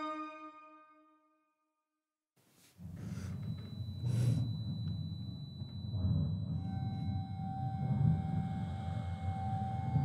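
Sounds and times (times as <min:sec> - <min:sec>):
high held tone: 0:02.8 - 0:10.0
low rumbling drone: 0:02.8 - 0:10.0.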